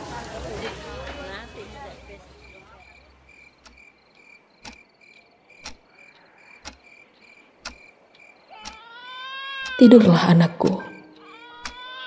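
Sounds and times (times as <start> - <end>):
faint crickets chirping: 0.0 - 12.0
sharp tick: 3.6 - 3.9, 4.6 - 4.9, 5.6 - 5.8, 6.6 - 7.0, 7.6 - 8.8
cat meowing: 8.5 - 10.1.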